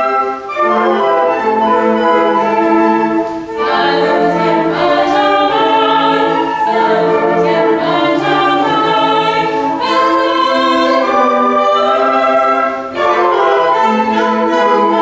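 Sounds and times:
concert band with flutes: 0.0s - 15.0s
woman singing: 3.6s - 12.3s.

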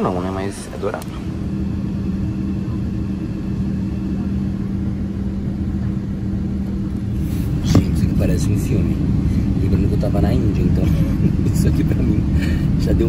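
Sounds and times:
airliner cabin drone: 0.0s - 13.0s.

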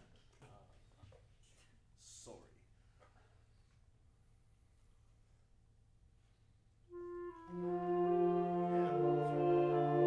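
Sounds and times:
wind and brass ensemble chords: 6.9s - 10.0s.

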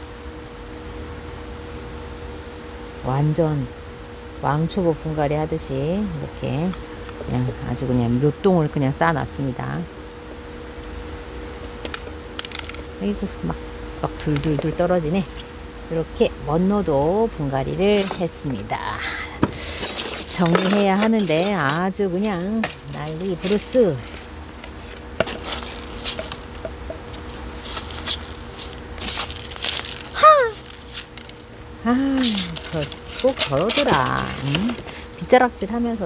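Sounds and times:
faint steady hum: 0.0s - 36.0s
gravel clicking on ceramic pot: 11.9s - 12.9s
brush sweeping soil on wood: 23.4s - 26.5s, 27.1s - 28.8s.

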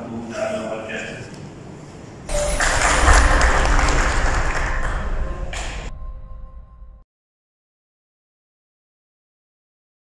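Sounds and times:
people clapping: 2.3s - 5.9s.

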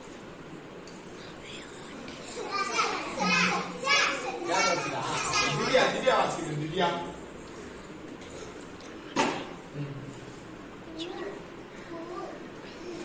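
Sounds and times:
children calling out: 2.3s - 6.3s.

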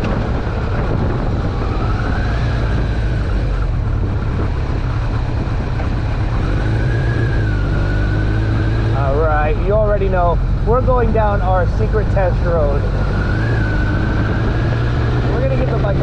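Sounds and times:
motorcycle engine running: 0.0s - 16.0s
wind rush over microphone: 0.0s - 16.0s.

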